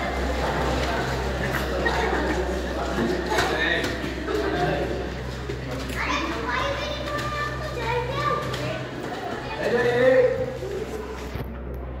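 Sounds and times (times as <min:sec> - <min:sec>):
children chattering and calling: 0:00.0 - 0:11.6
steady low hum: 0:00.0 - 0:12.0.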